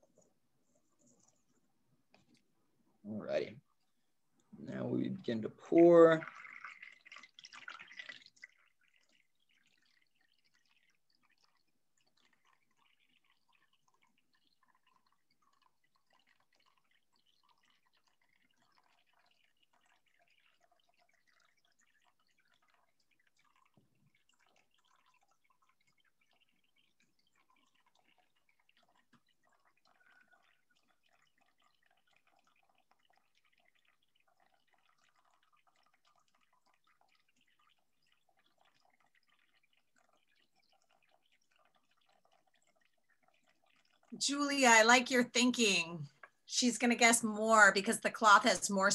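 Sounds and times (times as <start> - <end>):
water trickling through coffee filter: 0.0 - 48.9.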